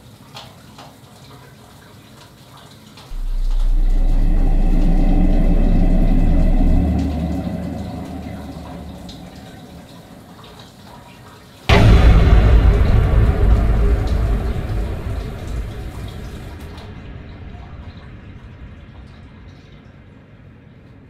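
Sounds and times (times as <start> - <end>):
water rushing with deep rumble: 3.1 - 10.7, 11.7 - 20.0.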